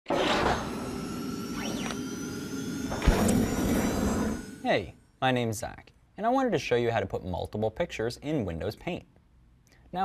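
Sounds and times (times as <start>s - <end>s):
rising and falling sweeps: 0.1s - 4.9s
held tone: 0.5s - 5.1s.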